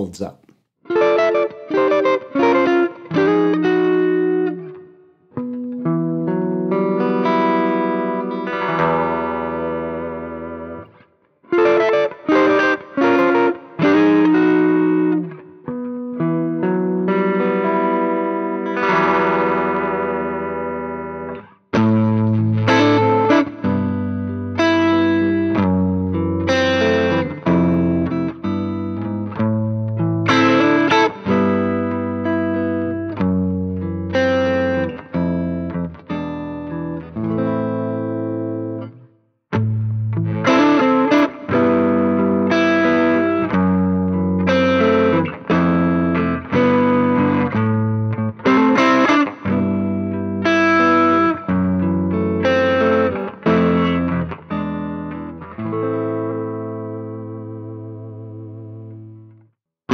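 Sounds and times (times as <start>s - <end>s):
electric guitar chords: 0.9s - 59.9s.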